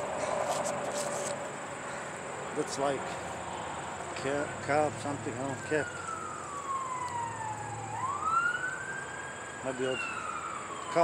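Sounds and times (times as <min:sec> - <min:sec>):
emergency vehicle siren wailing: 0:04.4 - 0:11.0.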